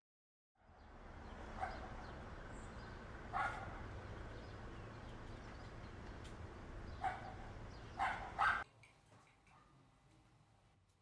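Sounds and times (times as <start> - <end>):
dog barking: 1.6 - 2.0, 3.3 - 3.9, 7.0 - 8.6.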